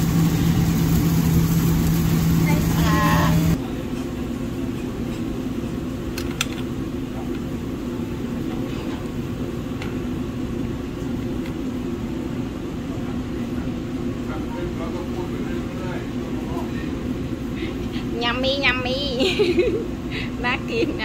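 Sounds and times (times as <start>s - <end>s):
kitchen equipment humming: 0.0s - 21.0s.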